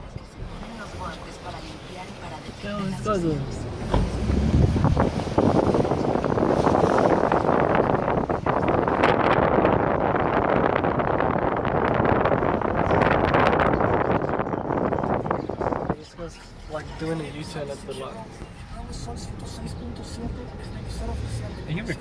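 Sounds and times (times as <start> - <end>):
wind buffeting microphone: 0.0 - 16.0
car wind and road noise: 0.0 - 22.0.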